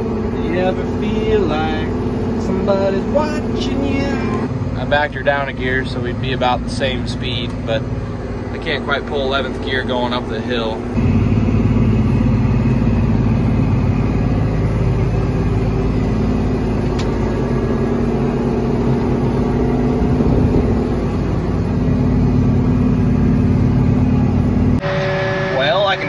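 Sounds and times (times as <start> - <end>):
tractor diesel engine under load: 0.0 - 26.0.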